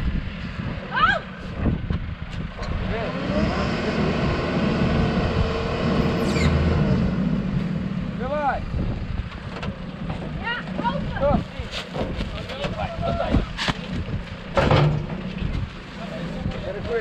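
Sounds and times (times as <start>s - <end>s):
diesel engine revving: 1.5s - 11.2s.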